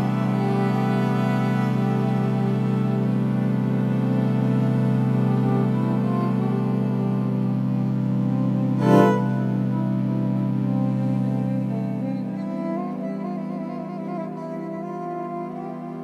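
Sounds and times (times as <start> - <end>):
electric viola drone and melody: 0.0 - 16.0.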